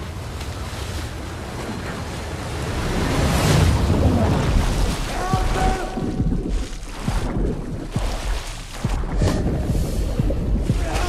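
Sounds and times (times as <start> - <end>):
rumbling windy noise swell: 2.4 - 11.0.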